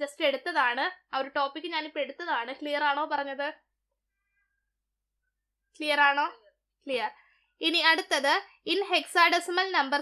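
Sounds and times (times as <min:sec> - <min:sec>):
woman's voice: 0:00.0 - 0:03.7, 0:05.8 - 0:10.0.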